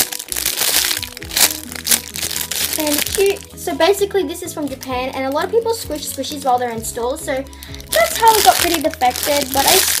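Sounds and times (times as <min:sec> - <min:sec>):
plastic bag crinkling: 0:00.0 - 0:03.5, 0:07.7 - 0:10.0
background music: 0:00.0 - 0:10.0.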